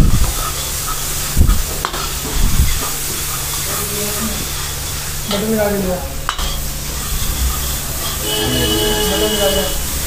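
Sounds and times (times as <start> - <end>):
butter sizzling in a pan: 0.0 - 10.0
metal ladle stirring: 0.3 - 10.0.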